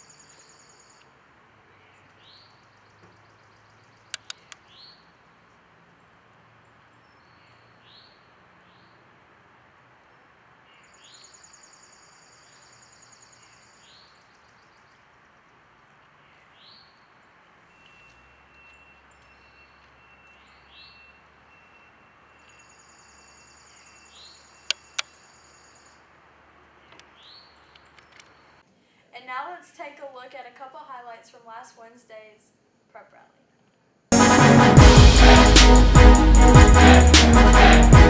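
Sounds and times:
birds chirping: 0:01.6 - 0:05.7, 0:10.7 - 0:26.0
sharp clicks: 0:04.1 - 0:04.6.

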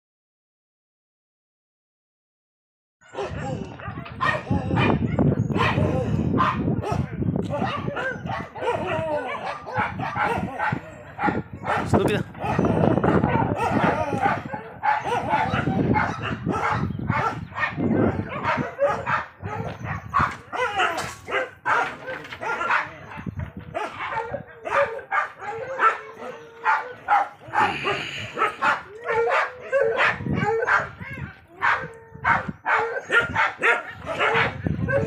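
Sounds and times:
dogs barking: 0:03.0 - 0:35.0.

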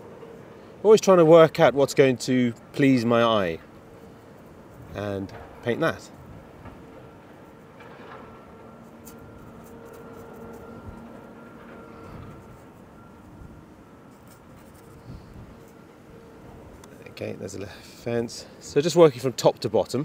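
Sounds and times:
faint steady hum: 0:00.0 - 0:20.0
paintbrush scratchy strokes: 0:08.8 - 0:11.3, 0:14.1 - 0:15.8.

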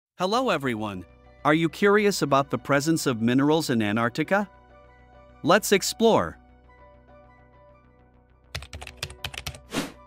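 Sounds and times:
soft background music: 0:00.2 - 0:10.0
keyboard typing: 0:08.5 - 0:09.7.

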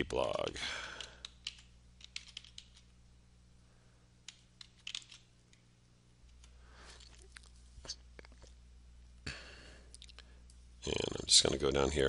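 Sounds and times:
low steady hum: 0:00.0 - 0:12.0
keystrokes on computer keyboard: 0:00.2 - 0:02.9, 0:04.3 - 0:05.3.

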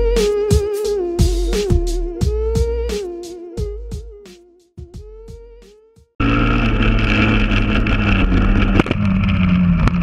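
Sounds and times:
motorcycle engine running: 0:06.2 - 0:10.0.

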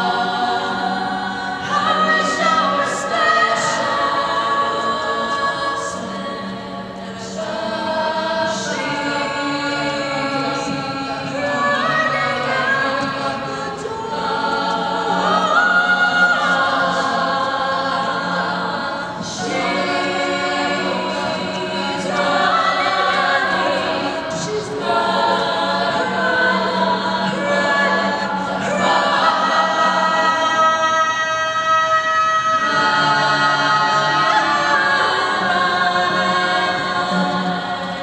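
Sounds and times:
female group singing in harmony: 0:00.0 - 0:38.0.

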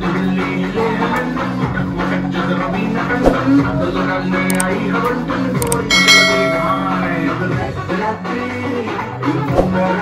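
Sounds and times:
quick clicks: 0:04.5 - 0:04.7, 0:05.6 - 0:05.9
bell-like ding: 0:05.8 - 0:07.6.

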